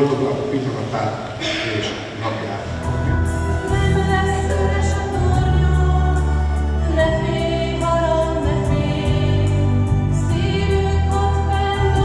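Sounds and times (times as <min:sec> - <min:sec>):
held bass notes: 0:01.4 - 0:12.0
group of voices singing: 0:02.8 - 0:12.0.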